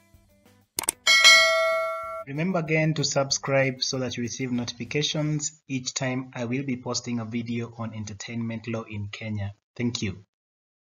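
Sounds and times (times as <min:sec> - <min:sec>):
notification bell chime: 0:01.1 - 0:02.3.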